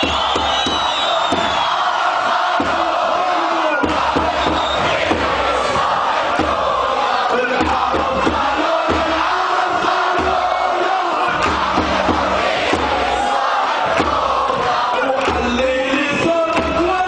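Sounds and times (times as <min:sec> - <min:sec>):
crowd chanting slogans: 0:00.0 - 0:17.0.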